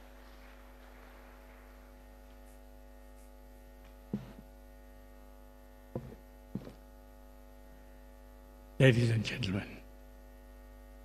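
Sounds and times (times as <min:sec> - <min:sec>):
electrical mains hum: 0:00.0 - 0:11.0
soft knocks: 0:04.1 - 0:04.4, 0:06.0 - 0:06.8.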